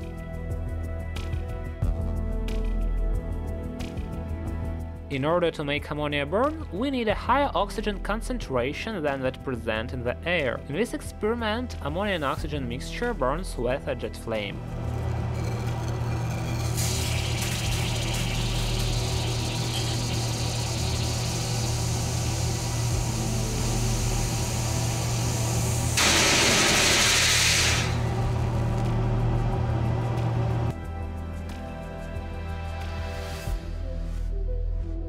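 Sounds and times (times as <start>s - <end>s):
background music: 0.0s - 35.0s
steady low hum: 14.6s - 30.8s
gas hissing into liquid: 15.5s - 28.3s.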